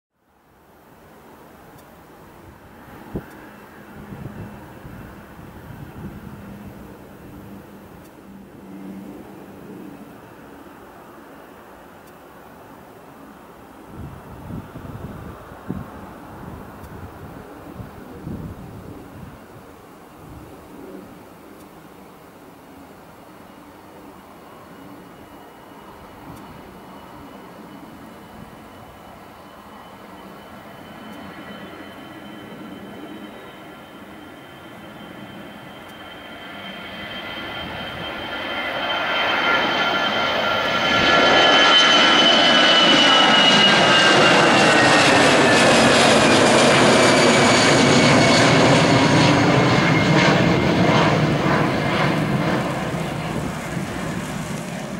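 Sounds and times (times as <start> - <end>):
jet engines whining and rumbling: 0.5 - 54.9.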